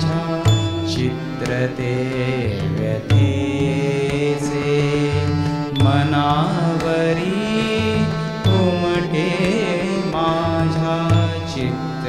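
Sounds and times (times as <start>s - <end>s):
deep tabla strokes: 0.0s - 1.5s
harmonium and sitar melody: 0.0s - 12.0s.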